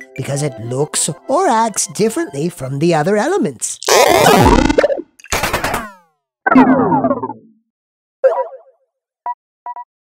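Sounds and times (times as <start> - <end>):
cartoon springy sound: 3.8 - 7.5.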